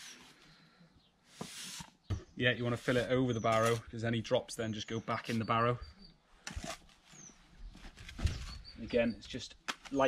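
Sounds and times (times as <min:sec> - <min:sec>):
bird chirp: 0:02.0 - 0:06.4, 0:07.0 - 0:09.6.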